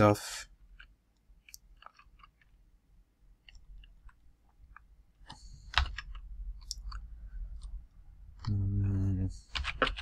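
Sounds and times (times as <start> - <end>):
computer keyboard keystrokes: 5.3 - 7.0, 9.5 - 10.0
man humming: 8.5 - 9.4.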